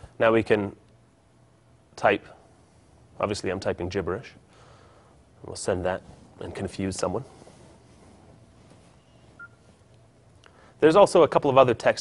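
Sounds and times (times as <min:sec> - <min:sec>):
short electronic phone beep: 0:09.1 - 0:09.6.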